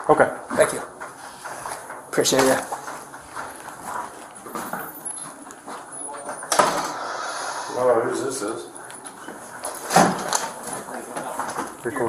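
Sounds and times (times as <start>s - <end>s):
clothing and handling noise: 0.1s - 7.2s, 8.8s - 12.0s
footsteps on hard floor: 0.4s - 7.2s, 8.8s - 12.0s.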